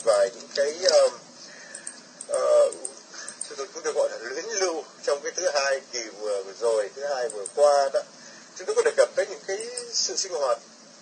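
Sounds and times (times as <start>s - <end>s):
man speaking: 0.0s - 1.3s, 2.3s - 10.6s.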